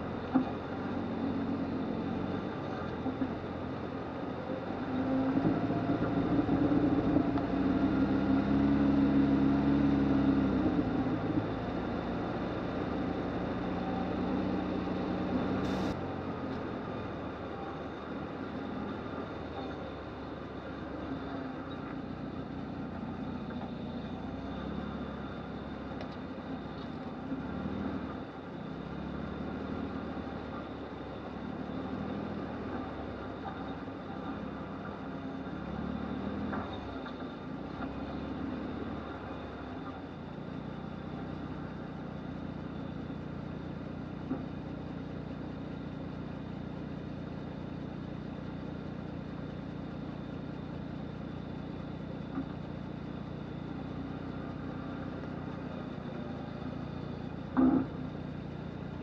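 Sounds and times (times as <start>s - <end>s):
engine straining at crawling speed: 0.0s - 59.0s.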